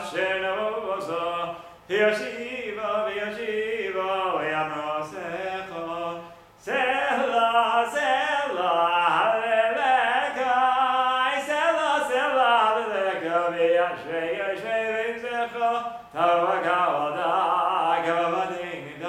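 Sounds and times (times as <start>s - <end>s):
man singing unaccompanied: 0.0s - 19.0s.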